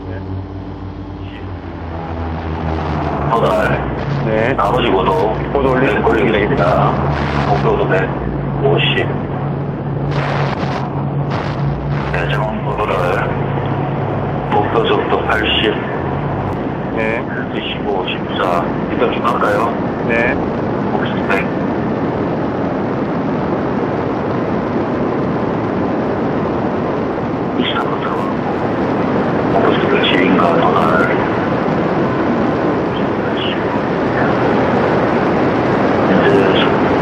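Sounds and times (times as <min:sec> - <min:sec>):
loud rushing noise: 0:00.0 - 0:37.0
indistinct talk: 0:03.1 - 0:10.6, 0:12.0 - 0:21.6, 0:36.0 - 0:36.9.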